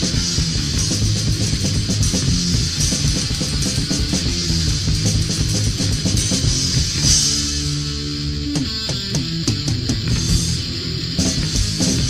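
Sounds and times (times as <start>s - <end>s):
punk rock band playing: 0.0s - 12.0s.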